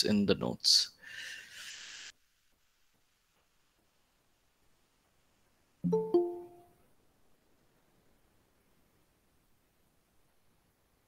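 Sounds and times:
two-note electronic chime: 0:05.9 - 0:06.7.

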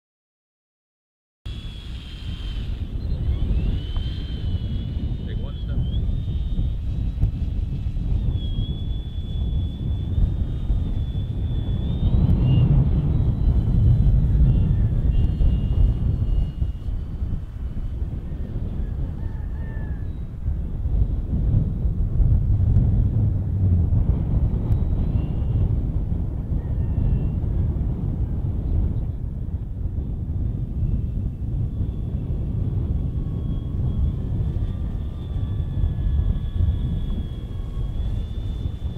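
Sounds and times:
model plane motor whine: 0:01.5 - 0:21.7, 0:23.8 - 0:28.4, 0:29.9 - 0:38.9
wind buffeting microphone: 0:01.5 - 0:38.9.

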